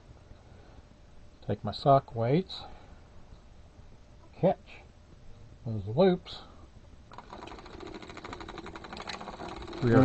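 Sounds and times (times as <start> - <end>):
knitting machine needles clattering: 7.1 - 10.0.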